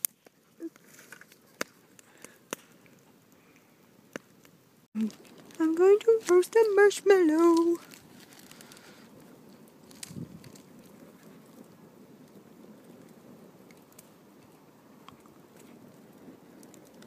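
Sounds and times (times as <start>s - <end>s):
fire popping: 0.0s - 17.0s
wood fire crackling: 0.0s - 17.0s.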